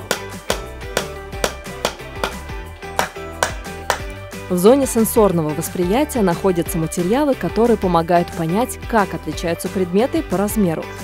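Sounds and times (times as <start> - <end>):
hammer tapping nail into wood: 0.0 - 4.1
background music with steady beat: 0.0 - 11.0.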